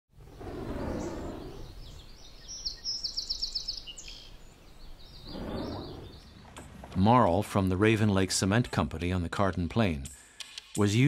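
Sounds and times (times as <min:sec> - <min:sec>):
birds chirping: 0:00.1 - 0:08.2.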